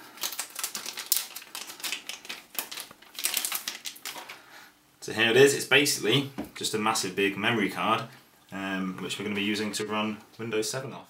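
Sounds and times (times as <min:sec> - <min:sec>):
metallic bag crinkling: 0:00.0 - 0:04.4.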